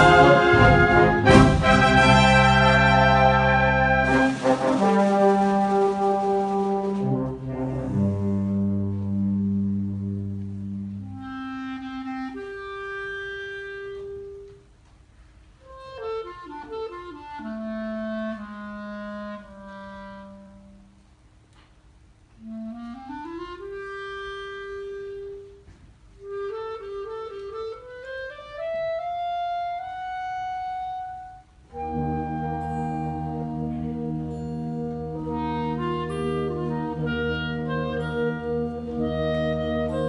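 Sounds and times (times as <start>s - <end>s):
wind band playing: 0.0s - 14.7s, 15.6s - 21.2s, 22.3s - 40.0s
solo wind instrument melody: 0.0s - 14.8s, 15.5s - 21.2s, 22.3s - 40.0s.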